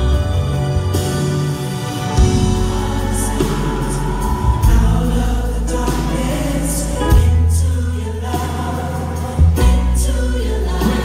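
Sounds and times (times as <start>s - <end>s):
band playing: 0.0s - 11.0s
choir singing gospel: 0.0s - 11.0s.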